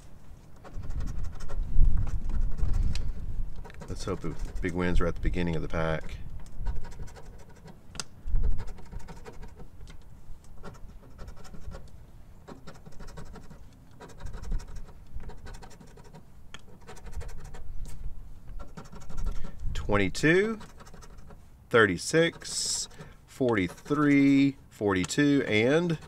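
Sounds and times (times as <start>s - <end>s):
coin scraping lottery ticket: 0.6s - 2.9s, 3.6s - 5.0s, 6.7s - 7.8s, 8.4s - 9.7s, 10.6s - 11.9s, 12.5s - 17.6s, 18.5s - 26.0s.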